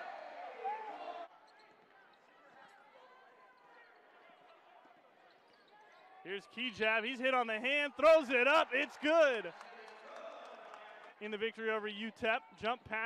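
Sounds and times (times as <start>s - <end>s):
arena crowd cheering: 0.0s - 1.3s, 6.5s - 11.6s.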